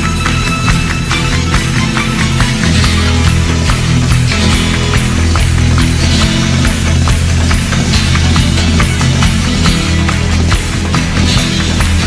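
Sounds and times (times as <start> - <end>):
bass notes: 0.0 - 12.0
drums steady beat: 0.0 - 12.0
guitar: 0.0 - 12.0.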